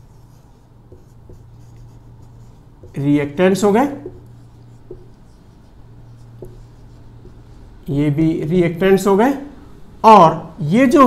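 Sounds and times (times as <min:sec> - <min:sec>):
marker scratching on whiteboard: 0:00.0 - 0:08.0
steady low hum: 0:00.0 - 0:11.0.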